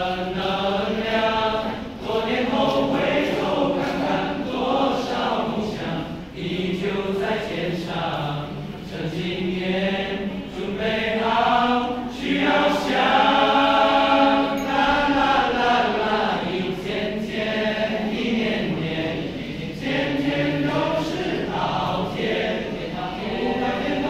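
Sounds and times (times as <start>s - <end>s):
boys' choir singing: 0.0s - 24.0s.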